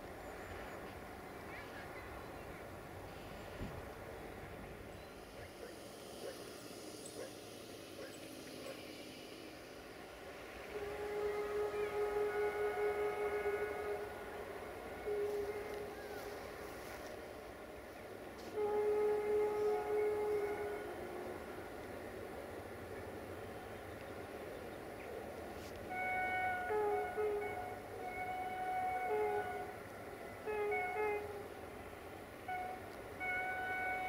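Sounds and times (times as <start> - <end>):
locomotive horn blasts: 8.0 - 23.6, 25.5 - 34.0.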